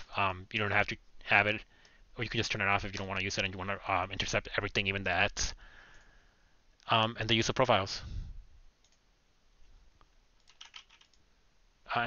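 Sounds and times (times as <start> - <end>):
computer keyboard typing: 10.4 - 11.2.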